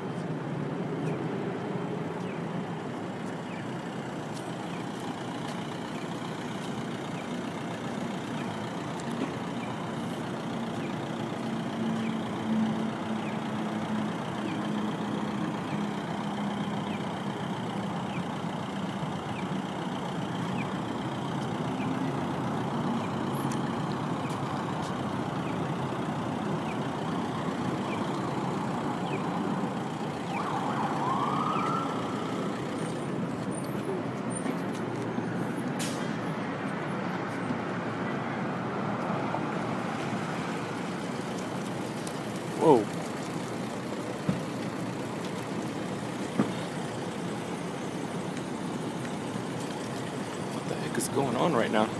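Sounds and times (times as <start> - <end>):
vehicle engines idling: 0.0 - 51.9
police siren whoop: 27.3 - 33.1.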